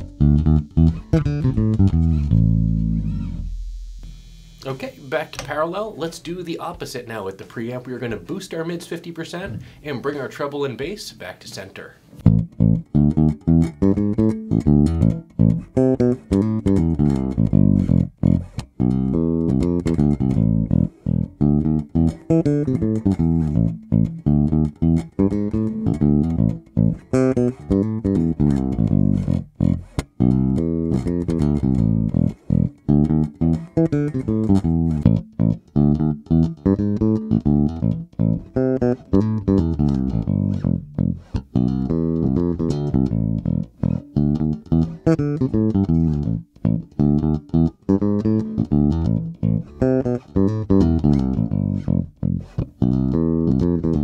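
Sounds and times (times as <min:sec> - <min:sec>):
electric bass played fingerstyle: 0:00.0 - 0:10.2, 0:12.1 - 0:54.0.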